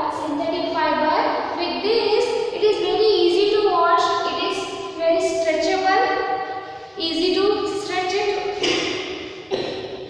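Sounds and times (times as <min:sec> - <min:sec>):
woman speaking: 0:00.0 - 0:06.2, 0:07.0 - 0:08.6.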